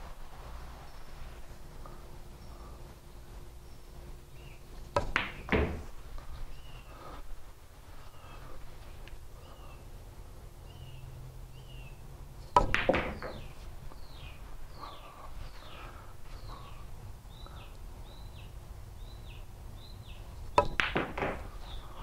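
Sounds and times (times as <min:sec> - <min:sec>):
bird calling: 0:03.6 - 0:07.2, 0:08.0 - 0:08.6, 0:09.4 - 0:09.9, 0:10.6 - 0:22.0
billiard balls knocking: 0:04.9 - 0:06.0, 0:12.6 - 0:13.6, 0:20.6 - 0:21.6
cue striking ball: 0:05.0 - 0:05.9, 0:12.6 - 0:13.5, 0:20.6 - 0:21.5.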